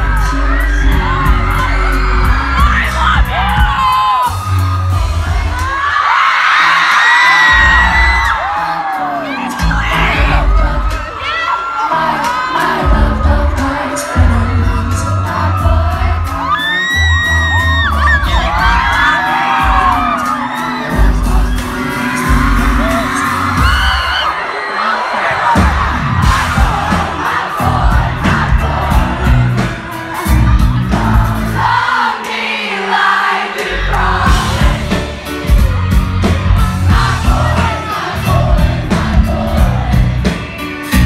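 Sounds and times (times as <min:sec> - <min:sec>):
heavy bass beat: 0:00.0 - 0:05.9, 0:07.5 - 0:08.6, 0:09.5 - 0:11.3, 0:12.6 - 0:24.2, 0:25.4 - 0:31.9, 0:33.6 - 0:41.0
crowd whooping: 0:00.0 - 0:41.0
woman singing: 0:08.4 - 0:17.2.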